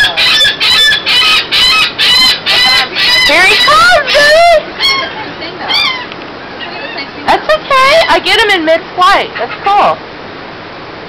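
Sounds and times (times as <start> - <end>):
gull calling: 0.0 - 10.0.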